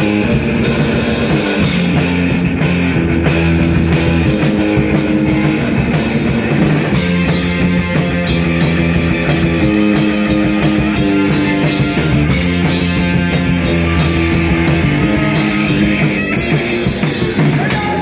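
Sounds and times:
punk rock band playing: 0.0 - 18.0.

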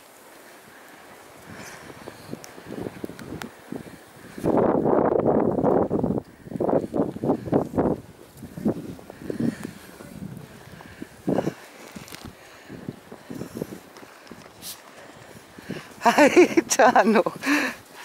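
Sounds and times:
footsteps crunching in snow: 0.0 - 16.5.

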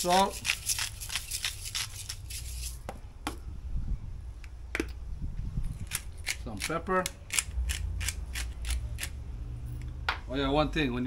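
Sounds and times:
salt grinder grinding: 0.0 - 2.8.

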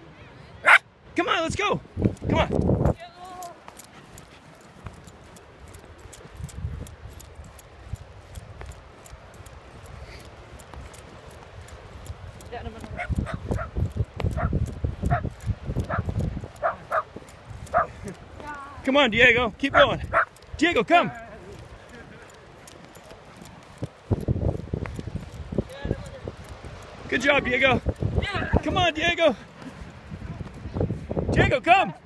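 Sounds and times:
wind rumbling on microphone: 0.0 - 32.0
footsteps running on soft sand: 1.5 - 32.0.

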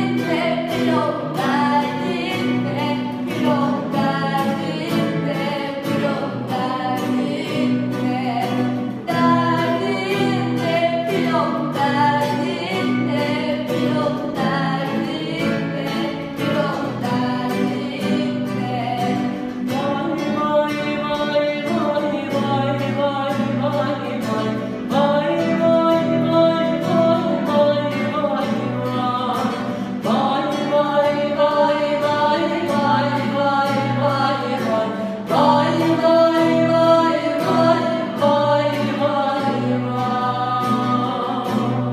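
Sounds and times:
acoustic guitar strumming: 0.0 - 41.9
man and girl singing duet: 0.0 - 41.9.

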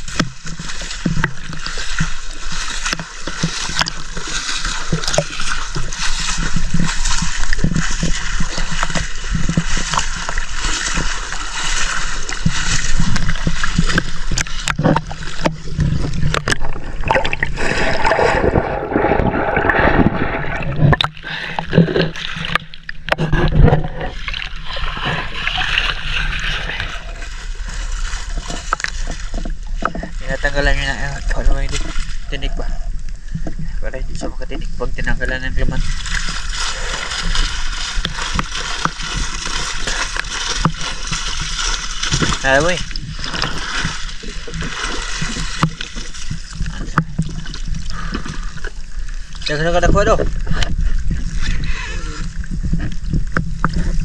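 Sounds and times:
water pouring from mesh: 0.0 - 22.7, 24.1 - 29.3, 35.8 - 48.1
seawater splashing and sloshing: 0.0 - 32.5, 35.4 - 54.0
muffled churning underwater sound: 0.0 - 54.0.

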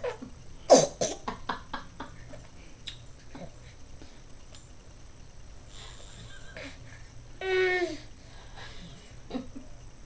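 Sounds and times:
baby coughing: 0.7 - 1.2.

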